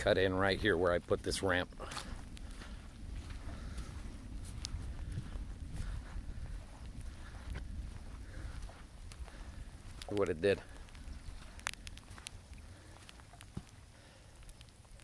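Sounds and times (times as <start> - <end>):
footsteps on wet sand: 0.0 - 14.6
low rumble: 0.4 - 13.4
faint clicks: 9.9 - 15.0.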